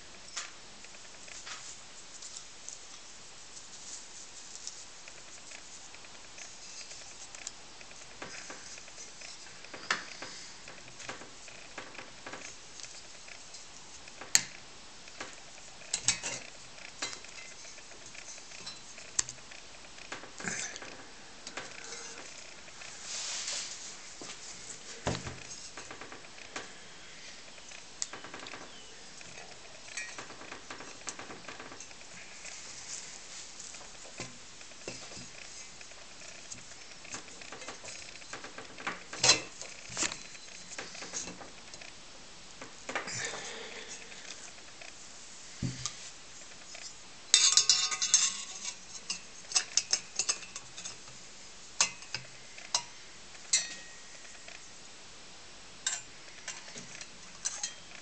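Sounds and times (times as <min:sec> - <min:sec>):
cloth rubbing over brass: 0:22.9 - 0:25.8.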